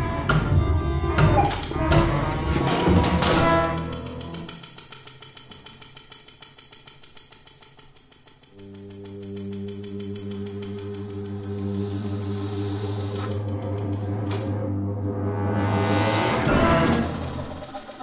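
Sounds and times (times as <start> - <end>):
chamber ensemble with electronics: 10.5 - 18.0
sustained low note: 14.2 - 17.6.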